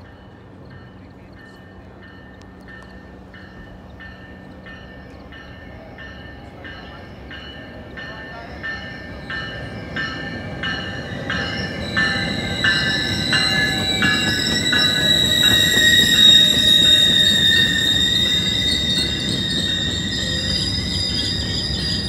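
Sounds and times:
diesel train rumble: 0.0s - 22.0s
train bell ringing: 0.0s - 22.0s
high wheel squeal: 8.4s - 22.0s.

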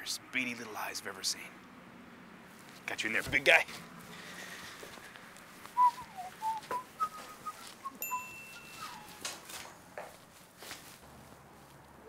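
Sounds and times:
person whistling a tune: 5.8s - 9.2s
high thin beep: 8.0s - 9.1s.

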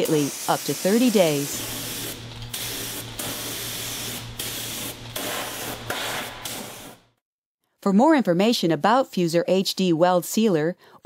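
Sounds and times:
spray gun hissing: 0.0s - 7.0s.

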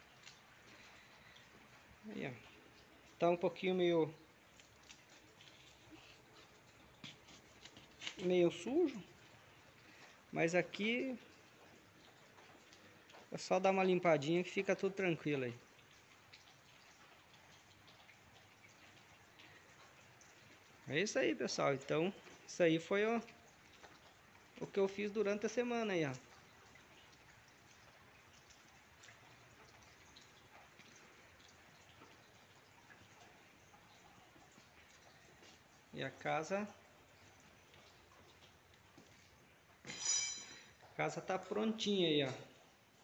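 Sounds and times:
faint rain falling: 0.0s - 43.0s
water drips: 0.0s - 43.0s.

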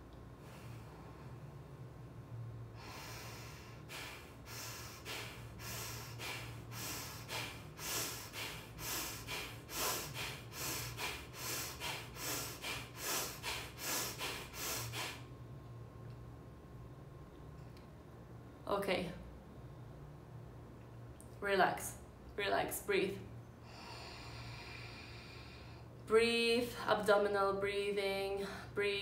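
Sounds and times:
woman breathing sharply through nose: 2.8s - 15.3s, 23.6s - 25.9s.

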